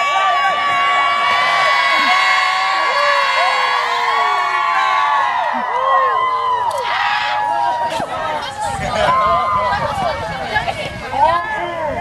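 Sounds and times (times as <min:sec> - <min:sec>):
crowd cheering and whooping: 0:00.0 - 0:11.9.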